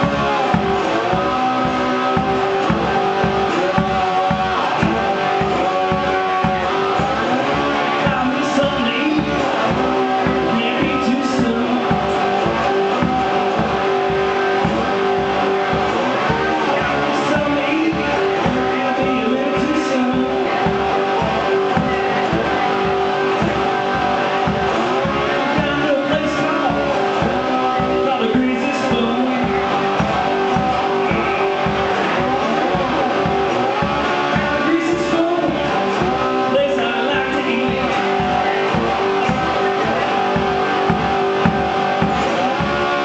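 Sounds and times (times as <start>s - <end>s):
blues guitar playing: 0.0s - 43.0s
low thumping beat: 0.0s - 43.0s.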